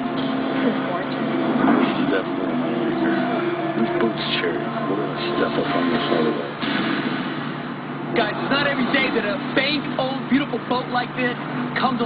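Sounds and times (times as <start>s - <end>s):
droning background: 0.0s - 12.0s
indistinct television voices: 0.0s - 12.0s.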